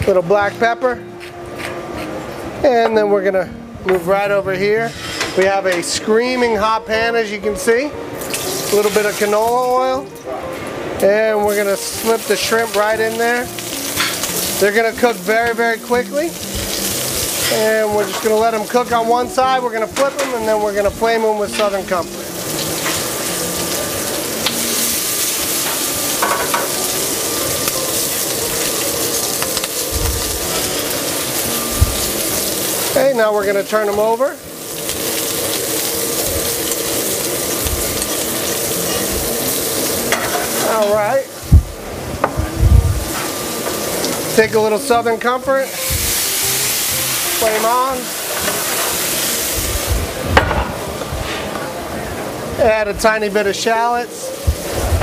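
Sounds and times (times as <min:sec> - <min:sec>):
shrimp sizzling in oil: 0:08.1 - 0:10.4, 0:11.2 - 0:52.1, 0:53.6 - 0:55.0
dull low thumps: 0:41.5 - 0:43.2, 0:49.6 - 0:51.2.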